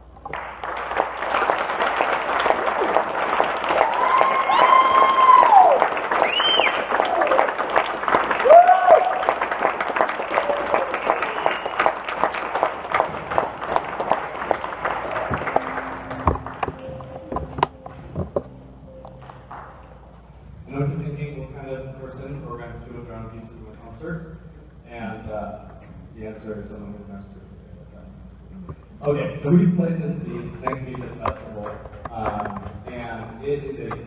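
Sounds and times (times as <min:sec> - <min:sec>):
audience applauding: 0:00.2 - 0:19.9
cheers and whoops: 0:03.7 - 0:07.6, 0:08.3 - 0:09.4, 0:10.2 - 0:11.8.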